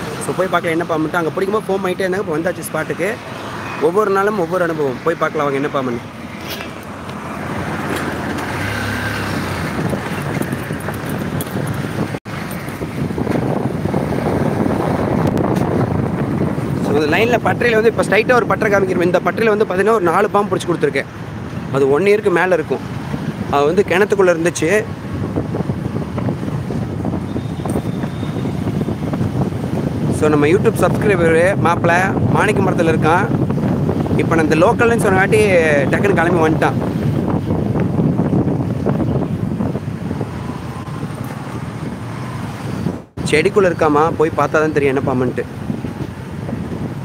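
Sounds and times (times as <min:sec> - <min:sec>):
motorbike engine and road noise: 0:00.0 - 0:47.0
traffic passing: 0:00.0 - 0:47.0
wind on microphone: 0:06.1 - 0:19.3, 0:22.8 - 0:47.0.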